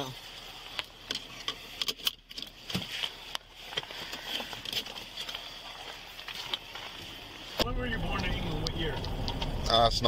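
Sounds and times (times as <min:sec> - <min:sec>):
handling noise on camera: 0:00.1 - 0:07.7
seatbelt clicks and rattles: 0:00.7 - 0:05.4, 0:08.6 - 0:09.7.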